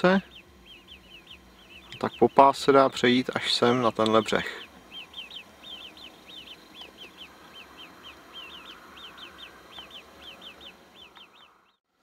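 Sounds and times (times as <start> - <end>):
small bird chirping: 0.0 - 11.8
faint outdoor background noise: 0.0 - 12.0.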